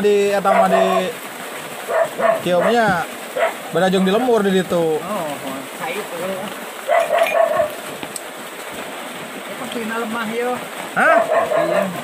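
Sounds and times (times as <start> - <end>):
voices in conversation: 0.0 - 12.0.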